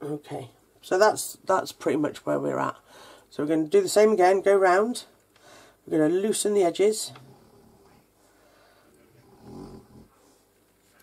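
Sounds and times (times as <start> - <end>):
pet snoring: 7.1 - 8.1, 9.1 - 10.2.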